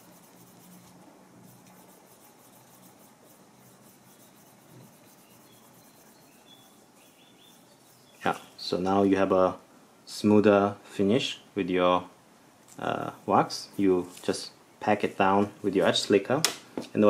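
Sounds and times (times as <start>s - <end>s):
slicker rubbing leather edge: 0.0s - 8.4s.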